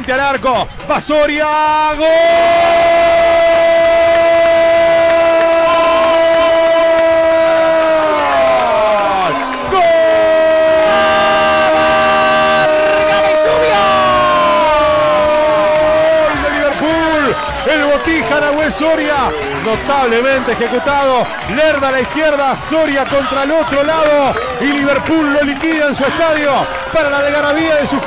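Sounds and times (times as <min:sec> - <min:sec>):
stadium crowd cheering: 0:00.0 - 0:28.0
commentator's drawn-out goal cry: 0:00.2 - 0:28.0.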